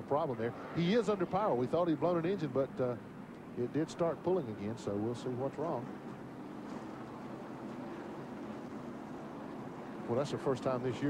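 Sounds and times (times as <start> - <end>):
distant race truck engines droning: 0.0 - 11.0.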